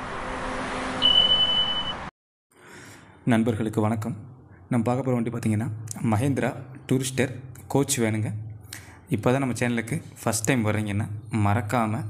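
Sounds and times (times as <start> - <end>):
high-pitched beep: 1.0 - 2.1.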